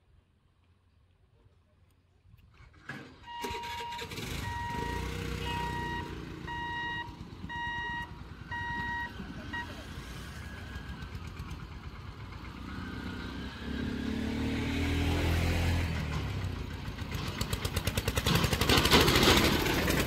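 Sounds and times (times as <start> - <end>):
tractor pulling trailer past: 2.5 - 20.0.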